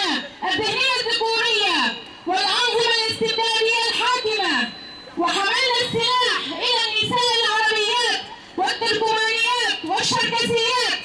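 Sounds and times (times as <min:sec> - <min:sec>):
woman reading aloud: 0:05.2 - 0:11.0.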